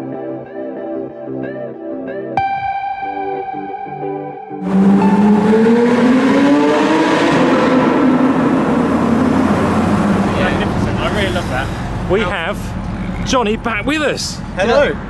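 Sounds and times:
car engine accelerating: 4.6s - 15.0s.

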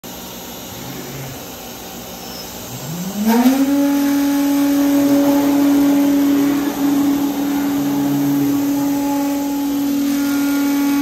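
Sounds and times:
shop machinery rushing: 2.8s - 11.0s.

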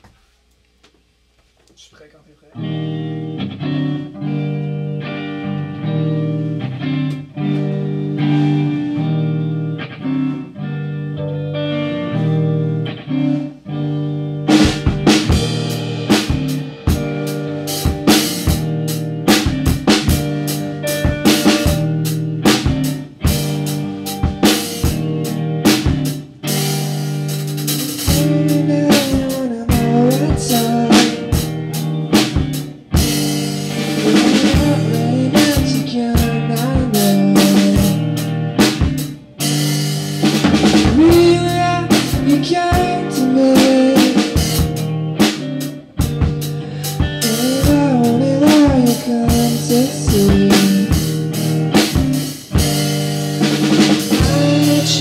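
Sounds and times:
electric guitar: 2.5s - 55.0s
drum kit snare and bass drum: 14.5s - 55.0s.

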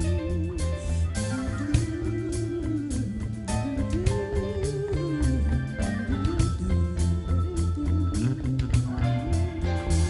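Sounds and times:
bass guitar: 0.0s - 10.0s
electric guitar with vibrato: 0.0s - 10.0s.

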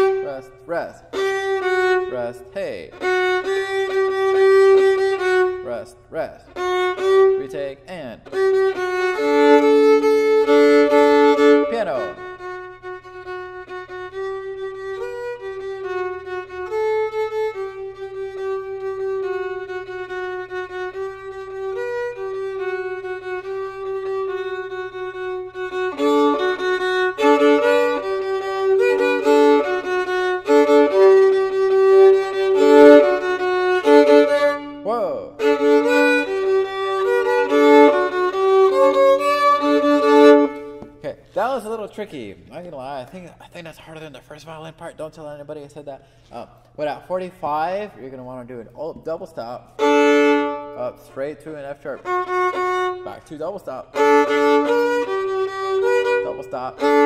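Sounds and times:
solo violin playing: 0.0s - 43.0s, 48.9s - 57.0s.

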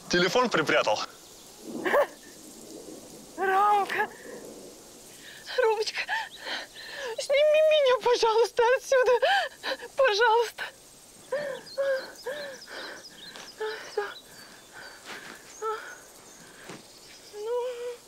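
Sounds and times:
woman laughing and crying out: 1.8s - 2.2s.

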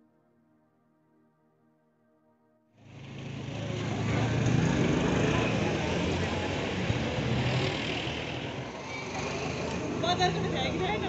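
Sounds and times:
outdoor street noise: 2.8s - 11.0s
vehicle engine running: 2.9s - 11.0s.

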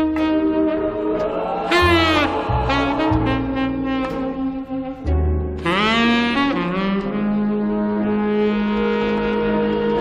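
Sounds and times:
soft sustained backing: 0.0s - 5.6s
tenor saxophone jazz ballad: 0.0s - 10.0s.

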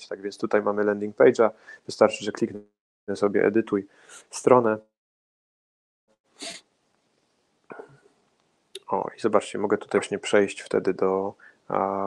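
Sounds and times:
sharp breath: 3.9s - 4.3s, 6.4s - 6.6s.

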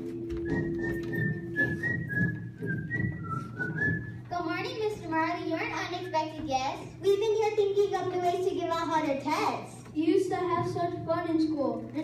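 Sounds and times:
person whistling a tune: 0.3s - 4.3s.

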